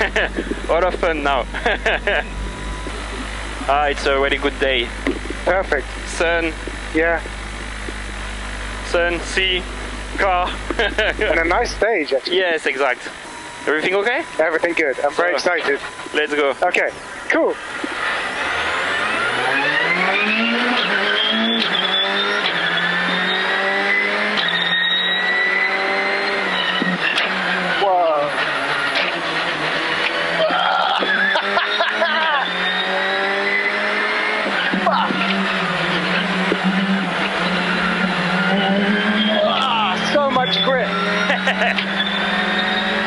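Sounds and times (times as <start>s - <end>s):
rally car engine accelerating: 0.0s - 43.0s.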